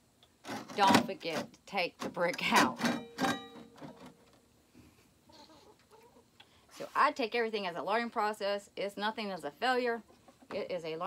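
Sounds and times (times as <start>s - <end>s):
chickens clucking: 5.2s - 6.4s, 10.0s - 10.7s.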